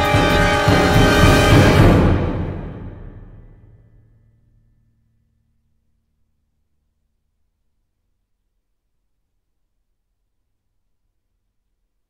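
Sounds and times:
orchestra with solo violin: 0.0s - 2.8s.

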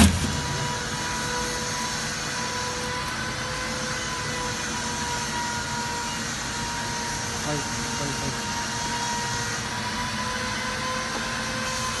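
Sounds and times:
constant whining tones: 0.0s - 12.0s
workshop machinery humming: 0.0s - 12.0s.

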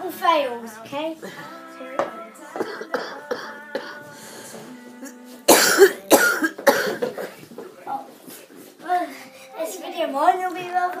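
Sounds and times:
person coughing: 5.5s - 7.4s.

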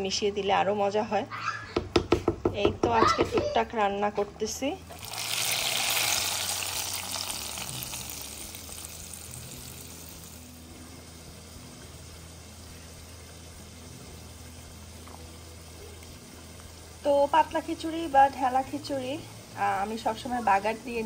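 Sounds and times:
hot oil hissing: 4.9s - 21.0s.

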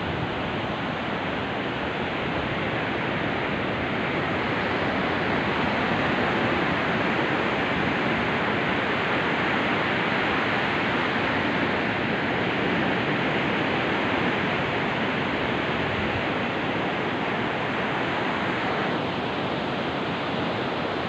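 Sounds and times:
ocean surf on sandy beach: 0.0s - 21.0s.

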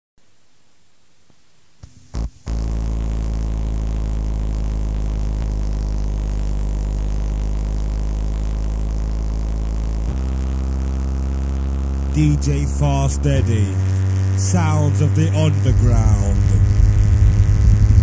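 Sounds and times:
low synthesizer drone: 2.0s - 18.0s.

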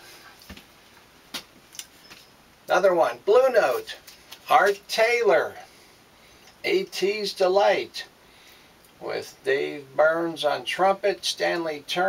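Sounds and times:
record jackets clicking and tapping: 0.4s - 2.3s.

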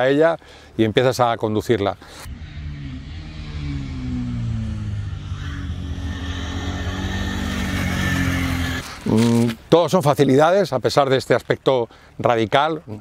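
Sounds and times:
motorcycle engine running: 2.3s - 8.8s.

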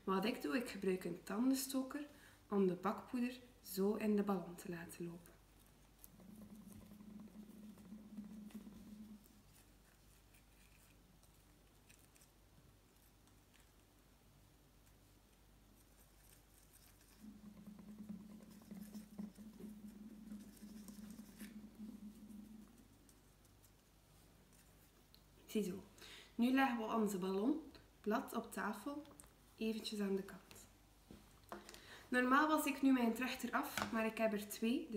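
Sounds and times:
low steady hum: 0.0s - 34.9s
toothpick scratching and tapping: 5.2s - 13.9s, 14.8s - 25.3s.

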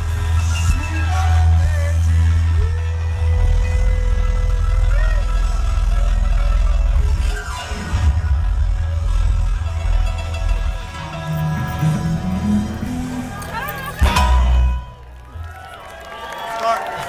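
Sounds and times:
heavy steady bass: 0.0s - 15.4s
live rock band playing: 0.0s - 15.5s
held lead guitar note bending: 3.2s - 15.2s.

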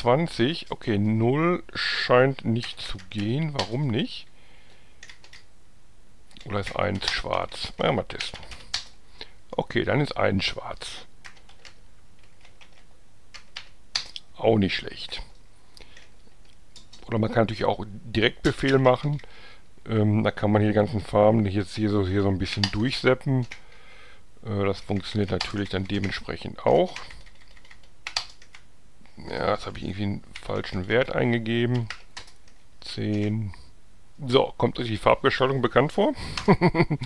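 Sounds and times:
computer keyboard keystrokes: 5.0s - 5.5s, 8.2s - 9.0s, 11.2s - 14.2s, 26.9s - 28.6s, 31.7s - 33.3s.

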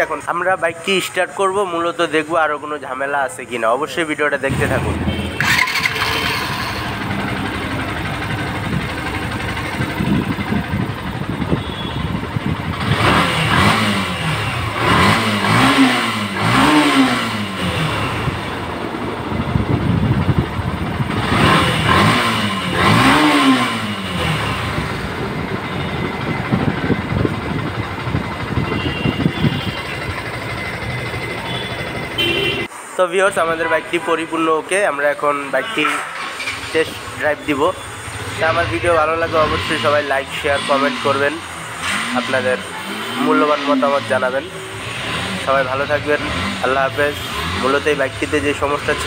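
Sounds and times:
motorcycle engine revving: 4.5s - 32.7s, 36.0s - 49.0s.

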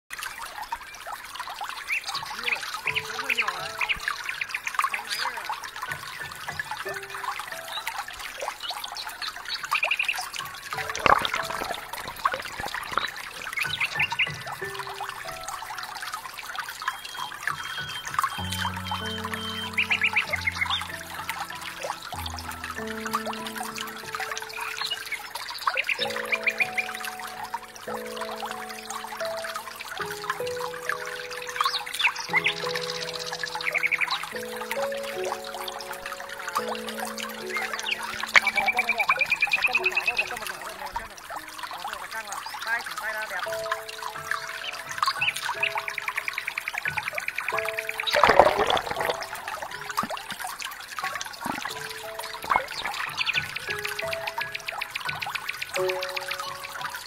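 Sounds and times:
water sloshing and trickling: 0.1s - 57.0s
background music: 2.2s - 57.0s.

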